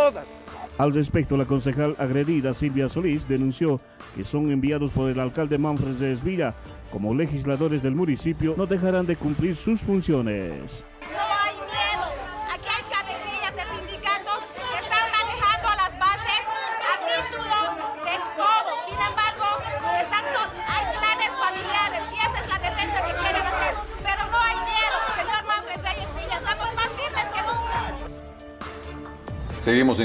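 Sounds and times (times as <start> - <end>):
voices arguing over one another: 10.9 - 28.4
woman's raised voice: 11.0 - 28.1.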